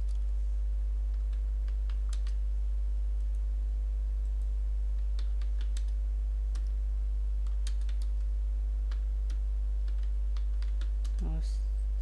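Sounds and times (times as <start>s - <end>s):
low electrical hum: 0.0s - 12.0s
keyboard keystroke clicks: 1.1s - 2.4s, 4.2s - 6.8s, 7.4s - 8.3s, 8.9s - 11.3s.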